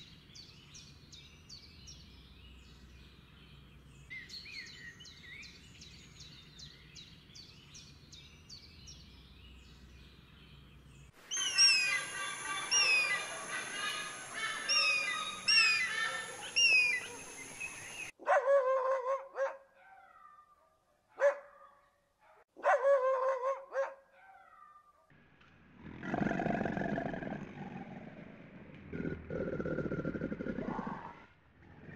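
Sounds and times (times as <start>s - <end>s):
high falling chirps: 11.2s - 18.1s.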